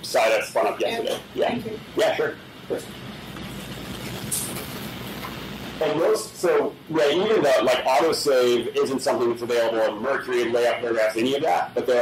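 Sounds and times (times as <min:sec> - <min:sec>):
man speaking: 0:00.0 - 0:02.9, 0:05.8 - 0:12.0
room background noise: 0:00.0 - 0:12.0
short hiss: 0:03.4 - 0:05.6.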